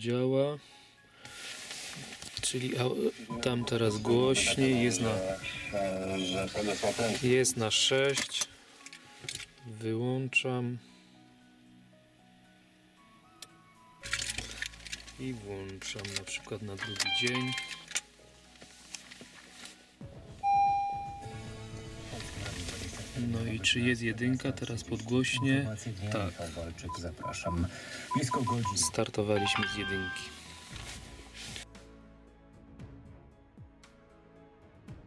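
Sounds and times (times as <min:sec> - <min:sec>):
car radio music with singing: 0:01.5 - 0:08.5, 0:15.2 - 0:18.0, 0:20.4 - 0:21.4, 0:22.1 - 0:31.6
electronic chime: 0:03.3 - 0:04.4, 0:16.8 - 0:17.8, 0:20.4 - 0:21.4, 0:27.2 - 0:30.7.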